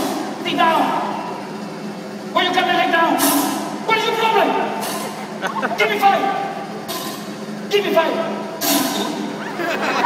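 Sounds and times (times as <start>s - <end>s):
man calling out: 5.4s - 6.6s.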